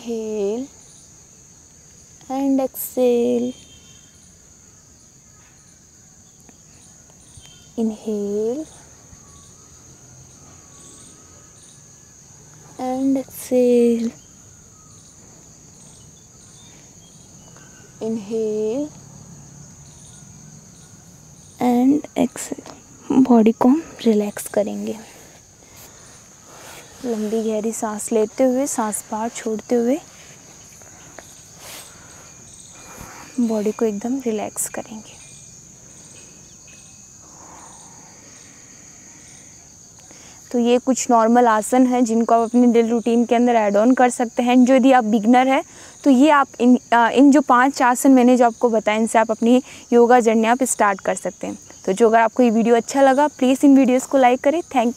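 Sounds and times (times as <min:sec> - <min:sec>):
insects droning: 0:00.0 - 0:54.9.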